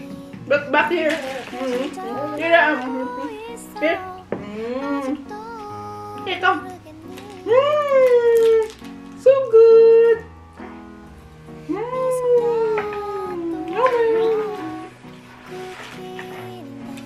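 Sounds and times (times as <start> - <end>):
high gliding vocal sounds: 0.0 - 8.4, 11.6 - 17.0
background music: 0.0 - 17.0.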